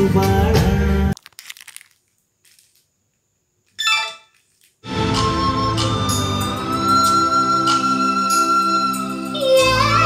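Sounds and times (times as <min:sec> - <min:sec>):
music from speakers: 0:04.9 - 0:10.0.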